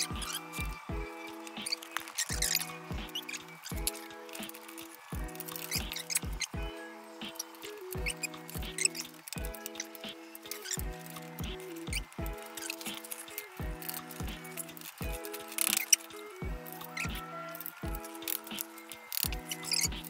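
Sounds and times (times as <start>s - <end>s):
drum beat: 0.1s - 1.7s, 2.3s - 4.0s, 5.1s - 6.8s, 8.0s - 9.6s, 10.8s - 12.5s, 13.6s - 14.4s, 15.0s - 15.2s.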